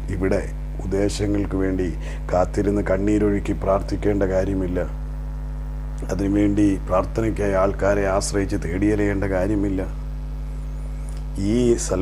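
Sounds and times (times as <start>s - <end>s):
man speaking: 0.0s - 5.0s, 6.0s - 10.0s, 11.3s - 12.0s
electrical mains hum: 0.0s - 12.0s.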